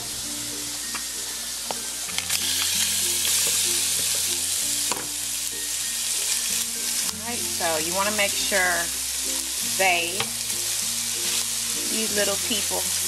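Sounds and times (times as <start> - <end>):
shrimp sizzling in a pan: 0.0 - 13.0.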